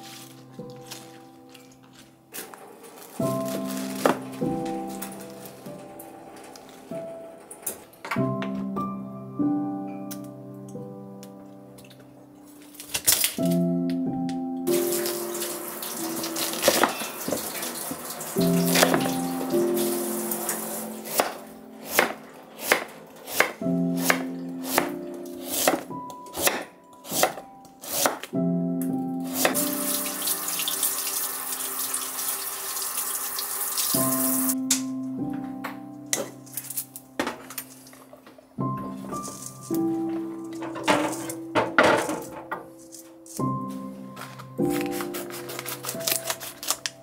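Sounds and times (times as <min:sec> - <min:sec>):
background music: 0:00.0 - 0:47.0
steady hiss: 0:14.7 - 0:21.2
kitchenware clink: 0:16.1 - 0:19.2, 0:40.4 - 0:43.6
knife chopping on wooden board: 0:21.1 - 0:28.3.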